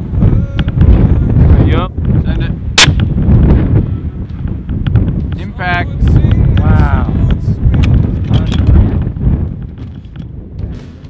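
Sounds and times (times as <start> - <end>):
wind buffeting microphone: 0.0 - 11.0
suppressed rifle shot: 2.8 - 3.1.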